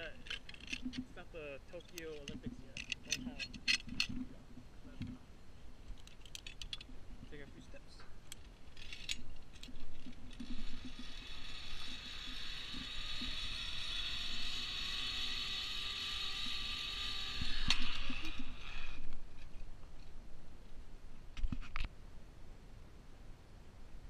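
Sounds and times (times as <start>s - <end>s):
zipline pulleys whirring on cable: 8.8s - 19.6s.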